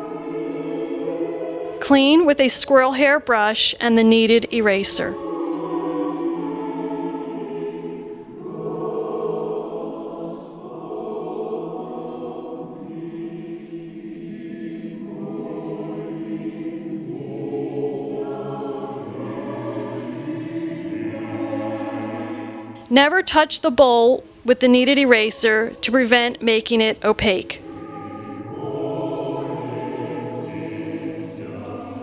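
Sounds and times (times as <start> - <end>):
choir singing chant: 0.0 - 2.9, 4.5 - 22.9, 24.2 - 32.0.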